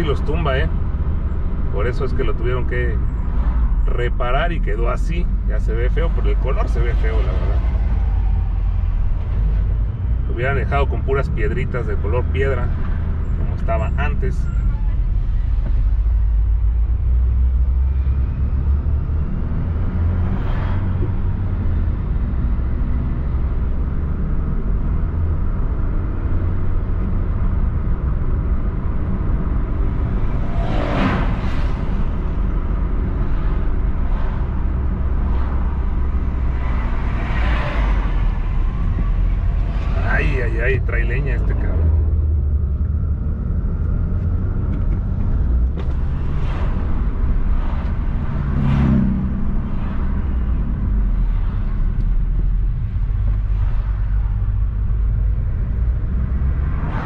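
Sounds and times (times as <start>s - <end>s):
car road and engine rumble: 0.0s - 57.0s
vehicles rushing past: 0.0s - 57.0s
truck passing: 29.3s - 57.0s.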